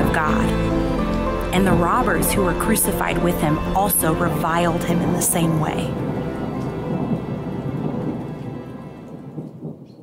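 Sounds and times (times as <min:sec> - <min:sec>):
low rumble: 0:00.0 - 0:09.8
rain-like noise: 0:03.6 - 0:09.9.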